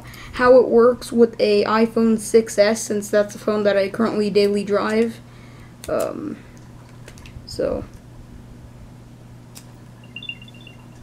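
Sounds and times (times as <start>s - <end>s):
steady low hum: 0.0s - 11.0s
high electronic beeps: 10.0s - 11.0s.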